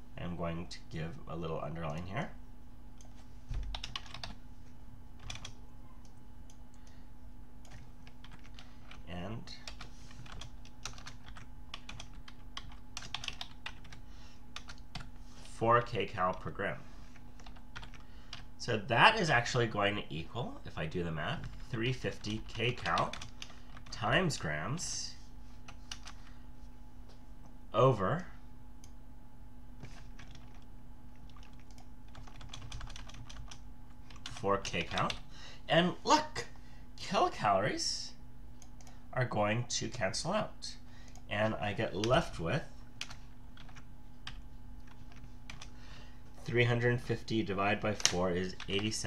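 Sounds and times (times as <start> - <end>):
faint electrical hum: 0.0 - 49.0
computer keyboard typing: 3.0 - 4.4, 5.2 - 6.6, 7.6 - 9.0, 9.6 - 14.0, 14.6 - 15.1, 17.4 - 18.5, 21.4 - 24.0, 25.7 - 26.2, 29.9 - 35.2, 43.0 - 45.8.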